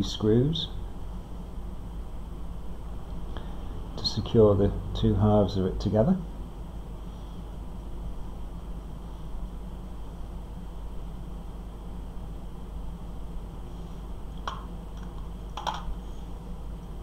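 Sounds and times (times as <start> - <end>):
low background hum: 0.0 - 17.0.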